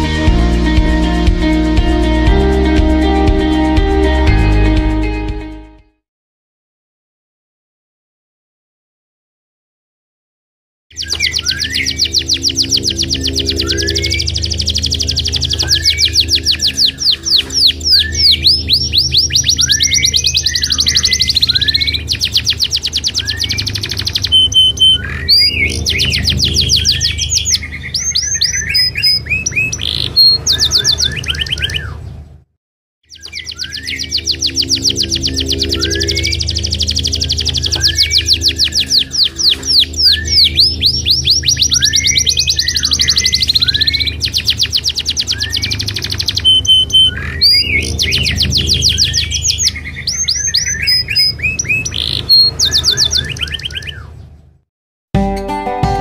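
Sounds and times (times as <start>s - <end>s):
canary singing trills: 10.9s - 32.2s, 33.1s - 54.4s
steady low hum: 12.0s - 28.0s.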